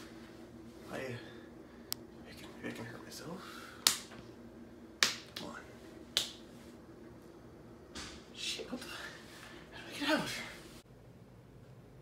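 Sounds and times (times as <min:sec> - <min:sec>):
finger snaps: 0:01.9 - 0:02.1, 0:03.8 - 0:04.2, 0:06.1 - 0:06.4.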